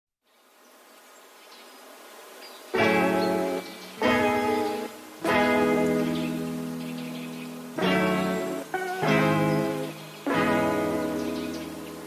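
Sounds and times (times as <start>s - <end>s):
faint hiss-like noise: 0.2s - 12.0s.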